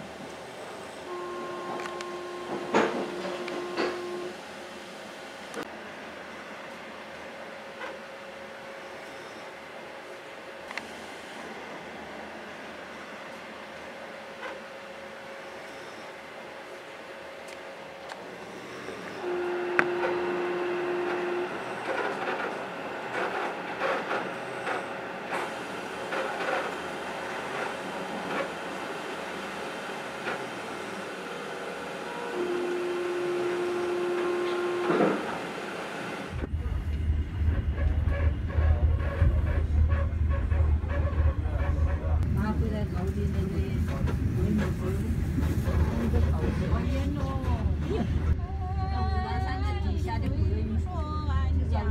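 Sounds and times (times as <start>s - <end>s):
train running on rails: 0.0s - 51.9s
train horn: 1.0s - 4.4s, 19.1s - 22.5s, 31.9s - 35.5s.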